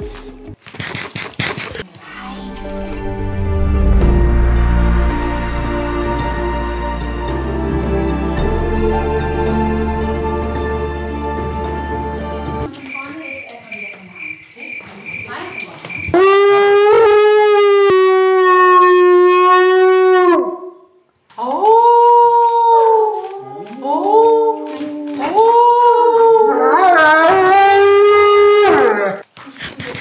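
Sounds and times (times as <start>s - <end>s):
wolfdog howling: 21.6s - 29.2s.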